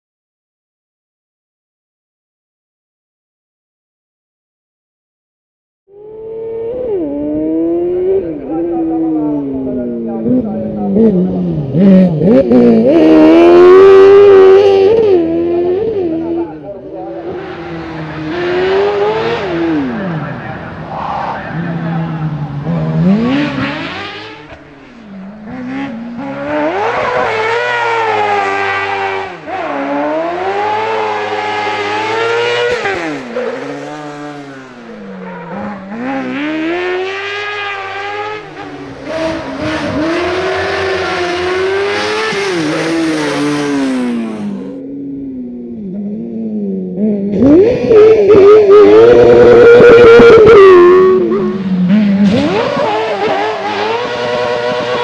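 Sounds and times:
racing buggy engine revving: 5.9s - 55.0s.

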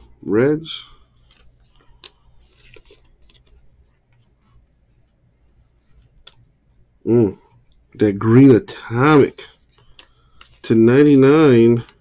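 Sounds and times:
trading cards rustling and scraping: 0.7s - 6.5s, 9.0s - 12.0s.

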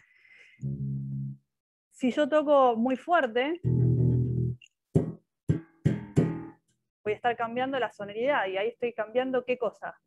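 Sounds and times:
bass guitar plucks: 0.6s - 1.4s, 3.6s - 6.6s.

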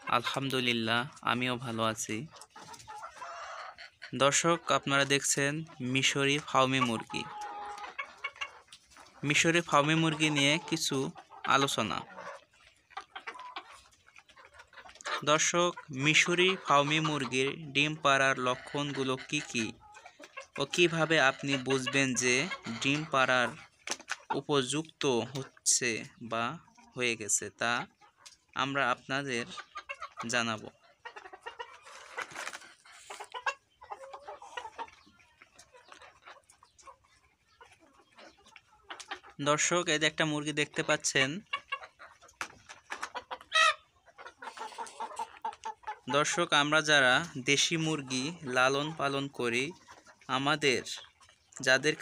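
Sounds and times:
chickens clucking softly: 0.0s - 52.0s.

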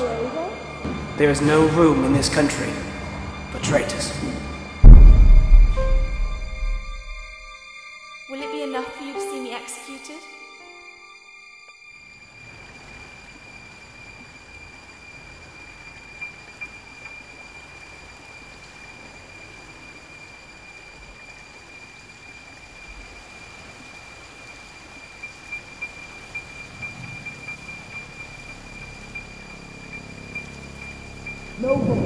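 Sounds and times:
steady hiss: 1.2s - 32.0s
high whistle-like tone: 3.5s - 8.4s, 25.2s - 32.0s.

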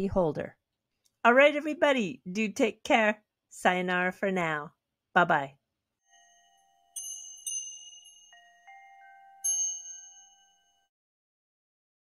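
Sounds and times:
bell-like chime: 6.0s - 10.9s.

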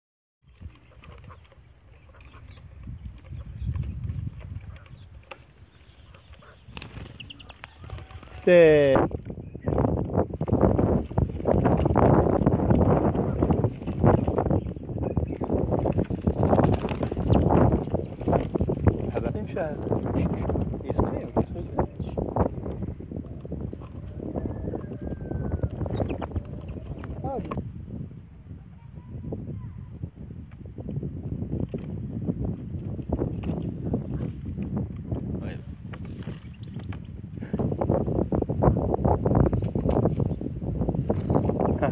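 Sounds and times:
wind buffeting microphone: 0.4s - 41.9s.

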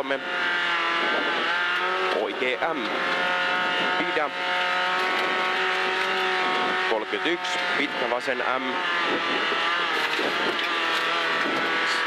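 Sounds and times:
car engine at high revs: 0.0s - 12.0s
road noise: 0.0s - 12.0s.

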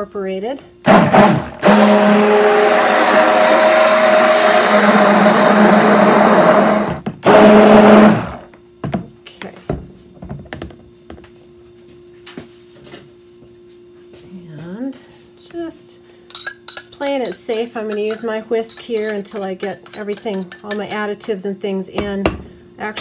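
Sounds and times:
immersion blender buzzing: 0.8s - 8.5s.

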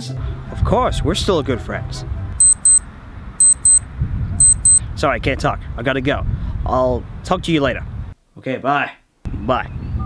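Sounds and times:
electronic alarm double beeps: 2.4s - 2.8s, 3.4s - 3.8s, 4.4s - 4.8s.

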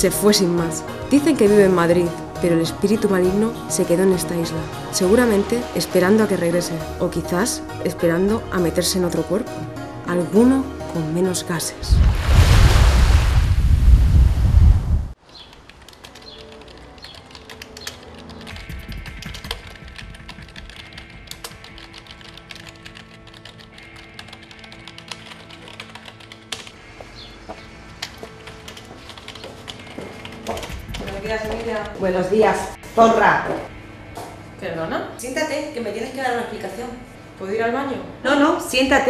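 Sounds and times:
quiet background music: 0.0s - 12.6s, 15.2s - 39.0s
loud rushing noise: 11.9s - 15.2s
computer keyboard typing: 15.5s - 26.8s, 28.0s - 32.1s.

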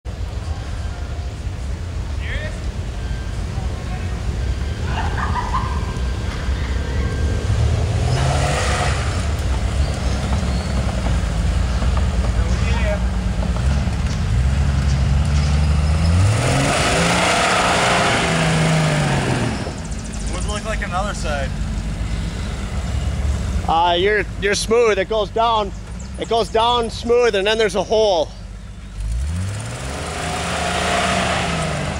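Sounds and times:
off-road vehicle engine revving: 0.1s - 31.9s.

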